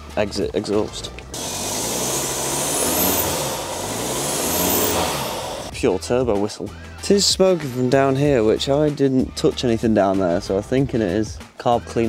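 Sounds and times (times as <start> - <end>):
diesel engine revving: 0.4 - 5.7.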